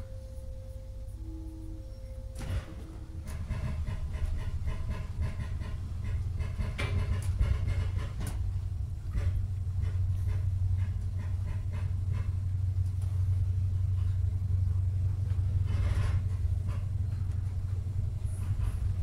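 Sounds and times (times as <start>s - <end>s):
steady electronic tone: 0.0s - 3.5s
track clunks: 0.0s - 19.0s
train rumble inside coach: 0.0s - 19.0s.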